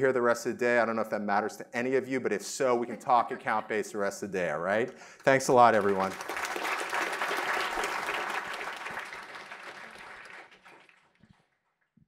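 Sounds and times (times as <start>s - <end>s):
audience applauding: 5.2s - 11.5s.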